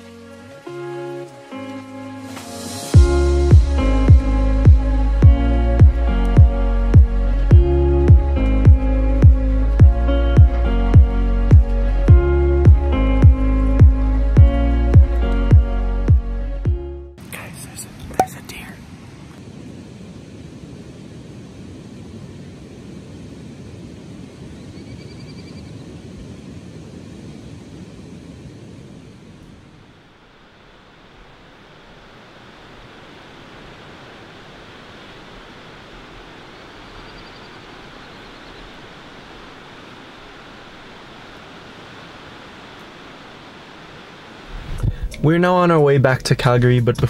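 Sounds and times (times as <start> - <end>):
fast river rushing: 0.0 - 14.4, 26.7 - 45.8.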